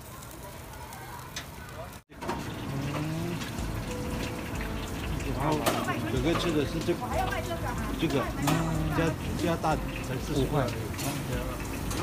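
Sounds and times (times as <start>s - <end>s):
market activity hiss: 0.0s - 12.0s.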